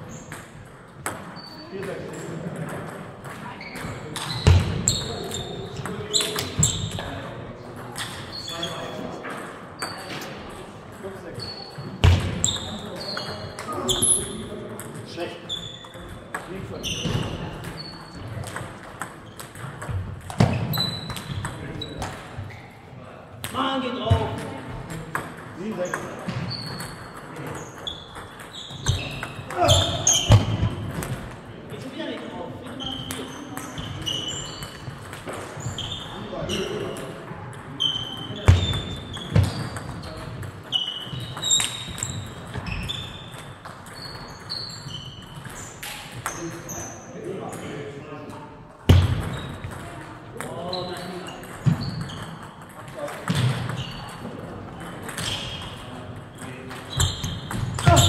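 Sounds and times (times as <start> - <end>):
table tennis balls clicking: 17.5 - 22.4.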